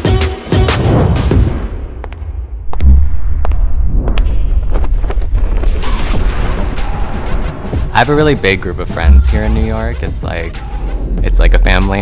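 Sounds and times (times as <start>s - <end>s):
heavy low thump: 0.8s - 8.0s
steady deep bass: 2.4s - 12.0s.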